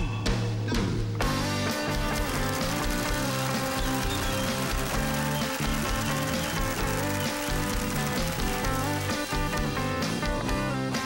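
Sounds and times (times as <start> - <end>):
live band playing dance music: 1.3 - 11.0.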